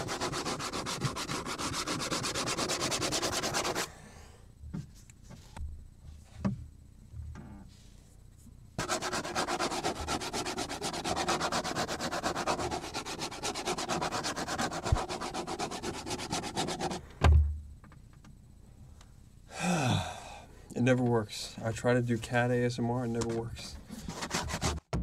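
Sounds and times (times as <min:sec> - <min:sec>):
scratching on cutting board: 0:00.0 - 0:03.9, 0:08.8 - 0:17.0, 0:23.9 - 0:24.9.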